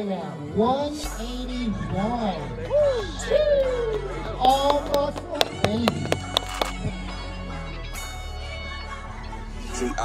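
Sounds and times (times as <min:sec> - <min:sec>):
voices: 0:00.0 - 0:06.8
music over loudspeakers: 0:00.0 - 0:10.0
sharp percussive hits: 0:04.5 - 0:06.8.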